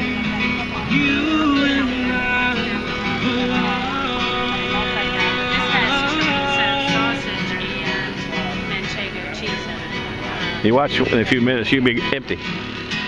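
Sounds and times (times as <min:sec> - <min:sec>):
guitar playing: 0:00.0 - 0:13.0.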